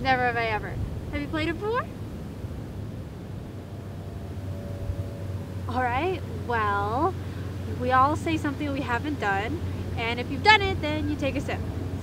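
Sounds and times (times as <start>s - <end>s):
faint steady hum: 0.0s - 12.0s
surf rumble: 0.0s - 12.0s.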